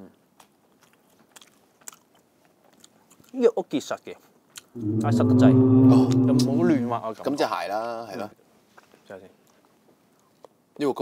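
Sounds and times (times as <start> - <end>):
person chewing: 0.4 - 3.3.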